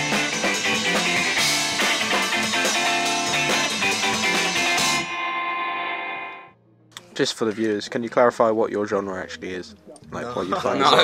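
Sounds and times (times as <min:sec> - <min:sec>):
electric guitar chord ringing: 0:00.0 - 0:06.6.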